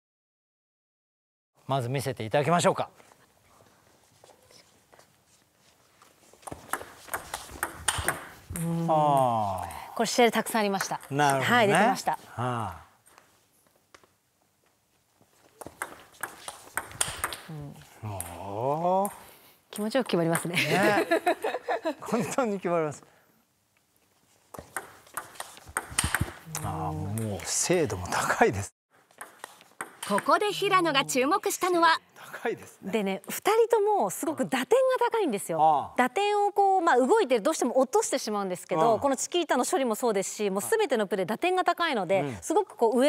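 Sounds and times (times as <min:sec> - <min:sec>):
table tennis ball clicks: 0:06.5 - 0:08.3, 0:15.6 - 0:17.5, 0:24.6 - 0:26.4, 0:29.2 - 0:30.4.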